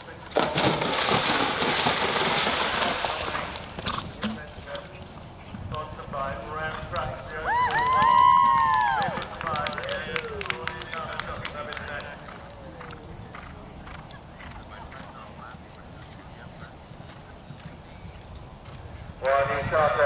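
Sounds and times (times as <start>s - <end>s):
low outdoor murmur: 0.0s - 20.0s
faint voices: 3.1s - 20.0s
spectators clapping: 7.5s - 12.6s.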